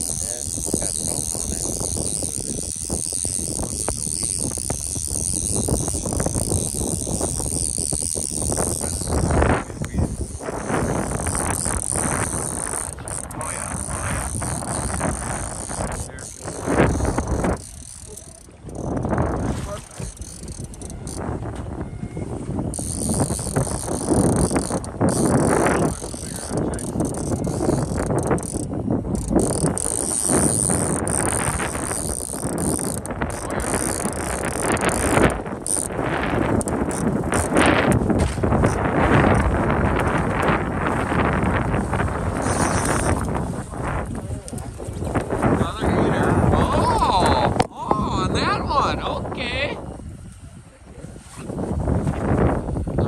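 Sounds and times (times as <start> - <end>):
boat engine rumble: 0.0 - 53.0
wind buffeting microphone: 0.0 - 53.0.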